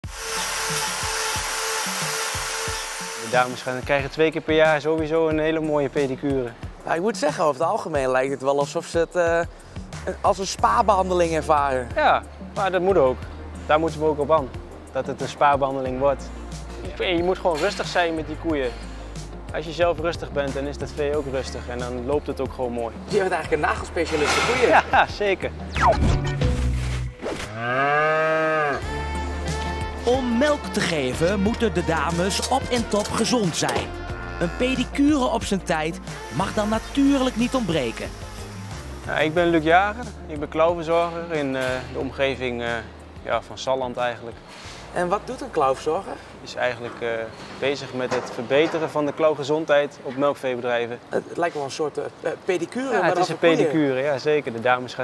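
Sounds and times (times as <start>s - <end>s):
angle grinder grinding: 0.0s - 3.8s, 36.1s - 39.1s
background music: 0.0s - 55.0s
cow mooing: 27.5s - 28.9s.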